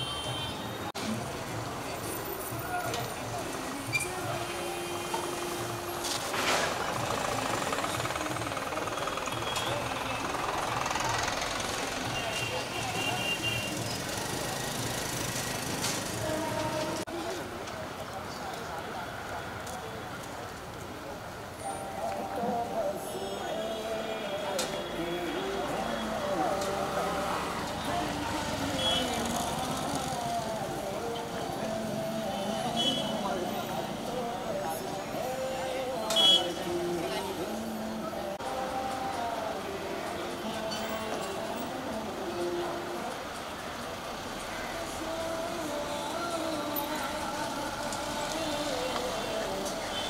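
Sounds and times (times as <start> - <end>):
crowd of people talking: 0.0 - 50.0
street traffic: 0.0 - 50.0
vehicle engine pulsing: 6.6 - 12.2.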